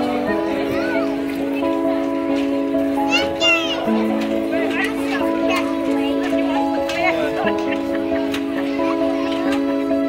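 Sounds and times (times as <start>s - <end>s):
background music of held chords: 0.0s - 10.0s
child shouting: 3.1s - 3.9s.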